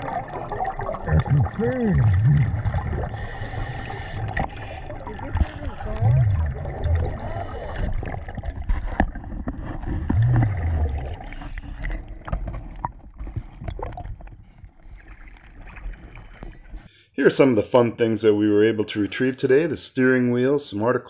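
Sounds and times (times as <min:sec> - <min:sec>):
underwater bubbling rumble: 0:00.0 - 0:16.9
water lapping and splashing: 0:00.0 - 0:16.9.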